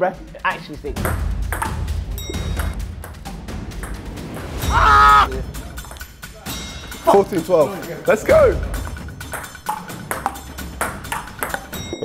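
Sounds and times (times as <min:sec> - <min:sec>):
background music with bass line: 0:00.0 - 0:07.2
person calling out: 0:04.7 - 0:05.3.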